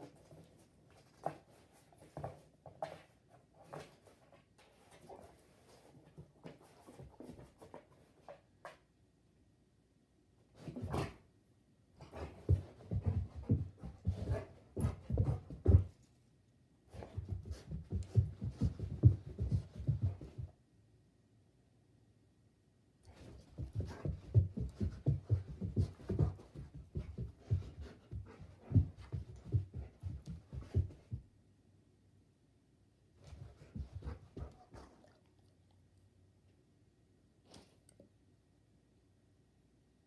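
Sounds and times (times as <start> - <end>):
dog sniffing and snuffling: 12.0 - 16.1, 23.1 - 31.2, 33.2 - 35.7.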